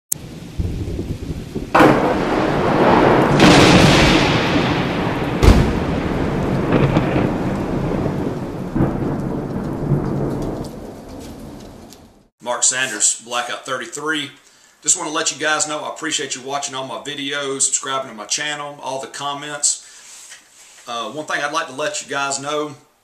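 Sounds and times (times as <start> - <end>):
rain: 0.1 - 12.3
rolling thunder: 0.2 - 12.3
sharp thunderclap: 0.2 - 12.3.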